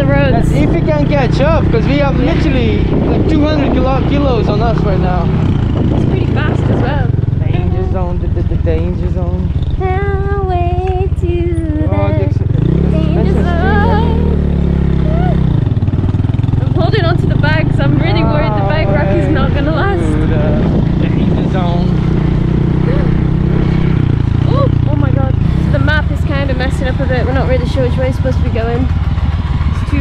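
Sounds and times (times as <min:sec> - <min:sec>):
voices talking: 0:00.0 - 0:15.6, 0:16.3 - 0:30.0
small motorcycle engine: 0:00.0 - 0:30.0.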